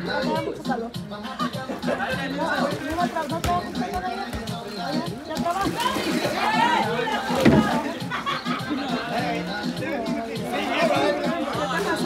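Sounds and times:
background music: 0:00.0 - 0:12.0
people chattering: 0:00.0 - 0:12.0.

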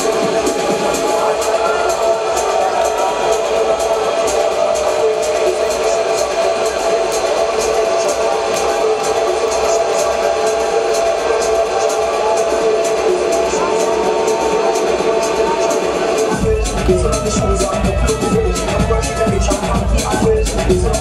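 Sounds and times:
electronic dance music: 0:00.0 - 0:21.0.

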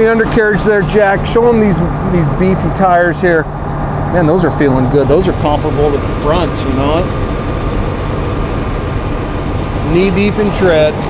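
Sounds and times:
bus engine idling: 0:00.0 - 0:11.0
faint steady whine: 0:00.0 - 0:11.0.

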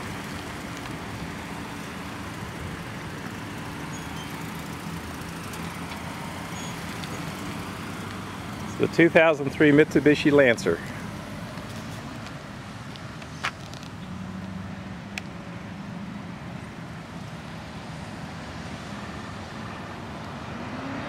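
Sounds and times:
car engine and road hum: 0:00.0 - 0:21.0.

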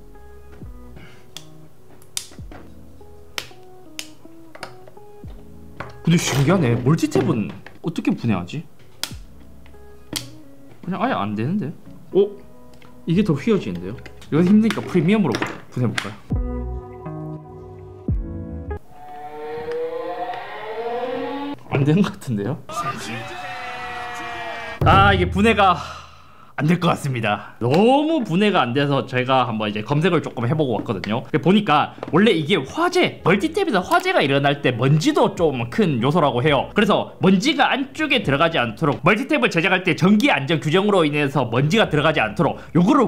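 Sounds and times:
sharp snap: 0:01.4 - 0:02.4, 0:09.0 - 0:09.3.

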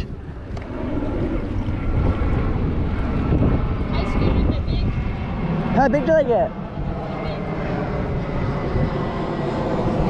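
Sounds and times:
engine rumble of passing motor: 0:00.0 - 0:10.0.

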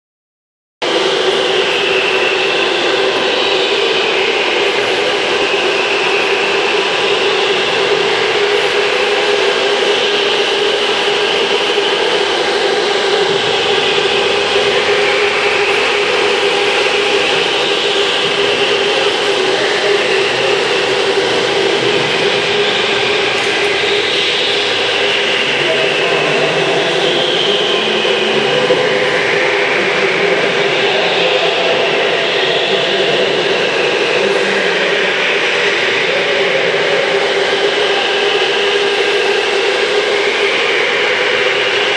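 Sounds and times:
electric kart motors whining: 0:01.0 - 0:41.9.

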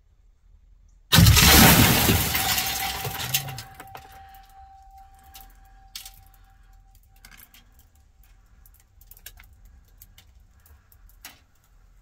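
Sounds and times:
loud shattering crash: 0:01.1 - 0:05.4
faint steady ringing tone: 0:02.5 - 0:08.4.

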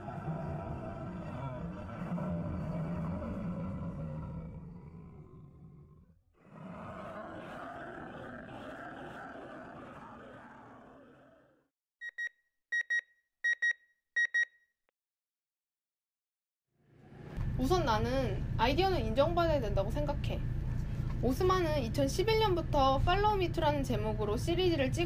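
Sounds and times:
digital double beeps: 0:12.0 - 0:14.5.

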